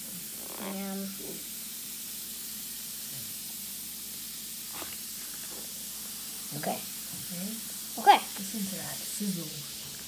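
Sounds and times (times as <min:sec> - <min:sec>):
fizzing in water: 0:00.0 - 0:10.0.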